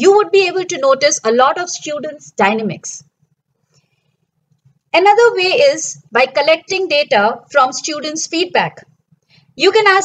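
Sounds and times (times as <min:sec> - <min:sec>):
woman narrating: 0:00.0 - 0:03.1, 0:05.0 - 0:08.9, 0:09.6 - 0:10.0.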